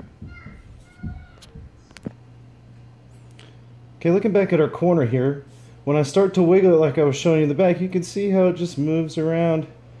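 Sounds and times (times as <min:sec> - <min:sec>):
sharp clicks: 0:00.0 - 0:02.1
steady low hum: 0:00.0 - 0:10.0.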